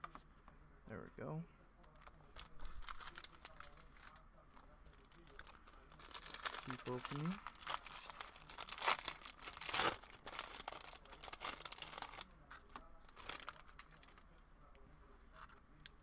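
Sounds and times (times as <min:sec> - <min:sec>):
foil wrapper crinkling and tearing: 0:02.3 - 0:04.2, 0:04.9 - 0:12.4, 0:13.1 - 0:14.3.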